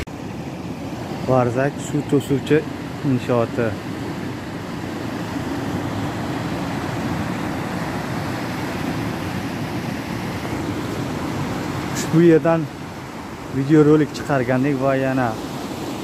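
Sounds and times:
water rushing over weir: 0.0s - 16.0s.

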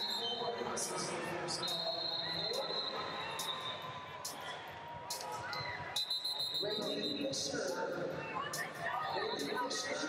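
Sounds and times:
large hall noise: 0.0s - 10.0s.

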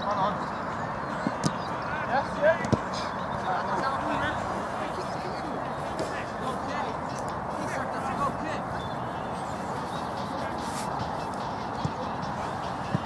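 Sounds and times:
background hubbub: 0.0s - 13.0s.

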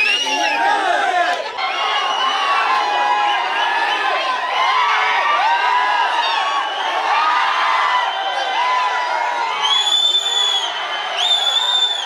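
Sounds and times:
crowd of fans shouting and cheering: 0.0s - 12.0s.

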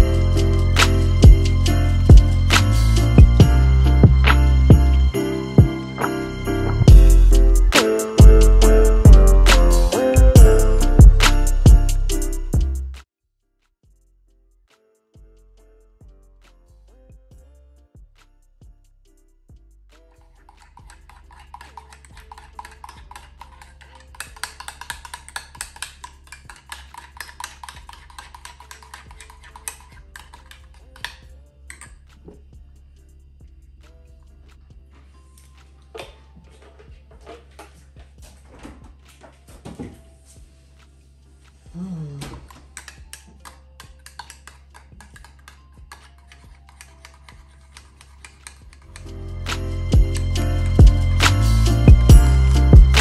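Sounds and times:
faint background music: 14.3s - 53.0s
metal spoon stirring in ceramic mug: 20.2s - 32.0s, 42.5s - 51.2s.

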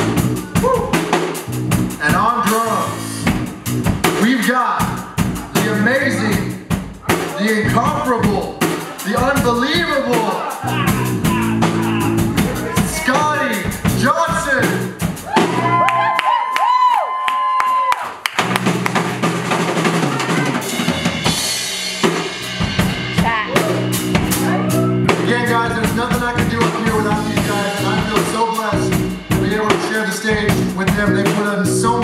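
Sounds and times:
bass guitar: 0.0s - 16.2s, 18.3s - 32.0s
drum kit: 0.0s - 32.0s
guitars: 7.6s - 14.1s.

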